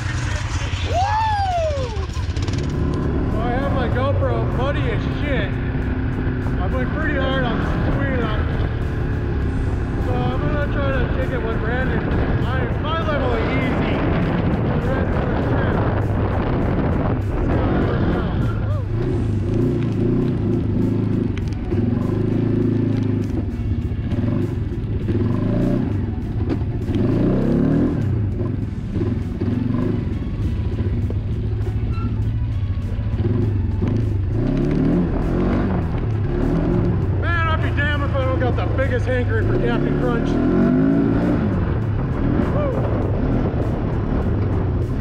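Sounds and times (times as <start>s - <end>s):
engine revving under load: 0.0s - 32.3s, 33.0s - 45.0s
background music: 0.0s - 45.0s.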